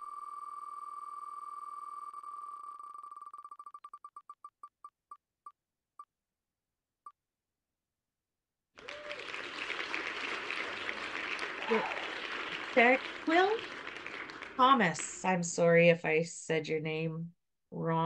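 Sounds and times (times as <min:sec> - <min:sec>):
applause sound effect: 0:08.8 - 0:15.4.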